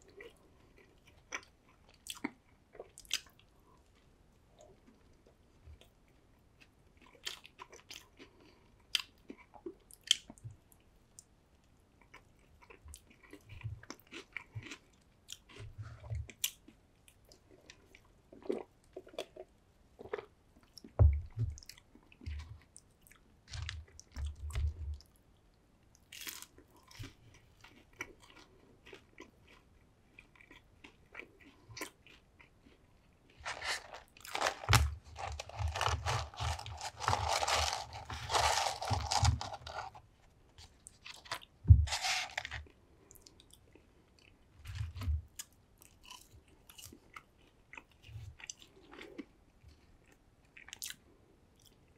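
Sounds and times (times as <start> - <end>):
chewing and biting food: 0.0 - 4.0, 6.6 - 10.4, 12.0 - 25.1, 26.1 - 51.9
paper carton rustling: 33.4 - 40.0, 41.2 - 42.6.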